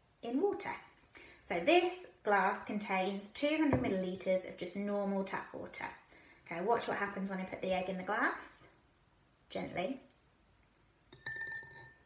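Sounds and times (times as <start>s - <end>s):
egg clinking against glass: 11.1s - 12.0s
glass ringing: 11.2s - 12.0s.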